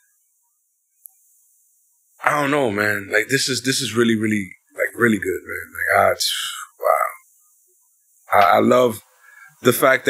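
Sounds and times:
man talking: 2.2s - 7.2s, 8.3s - 10.0s
short vocal sound: 5.9s - 7.2s
breathy exhale: 9.2s - 9.6s.

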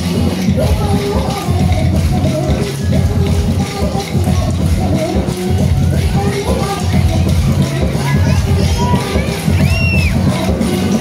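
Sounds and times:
crowd chatter: 0.0s - 11.0s
loud music with bass beat: 0.0s - 11.0s
children shouting: 5.8s - 11.0s.

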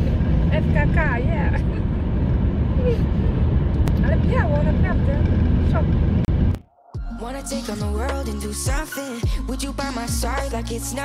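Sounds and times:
road and engine rumble in car: 0.0s - 6.6s.

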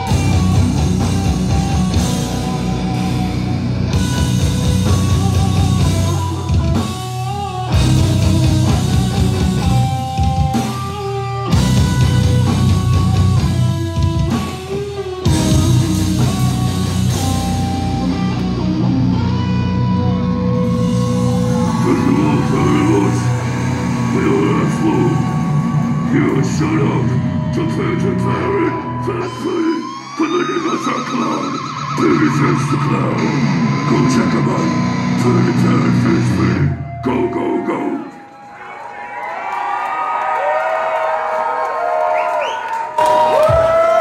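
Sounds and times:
distorted guitars and bass: 0.0s - 37.7s
crowd cheering and yelling: 14.3s - 44.0s
shouted vocal: 20.6s - 27.4s.

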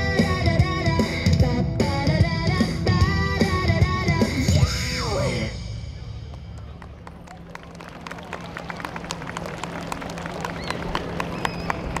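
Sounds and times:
audience clapping: 6.3s - 12.0s.

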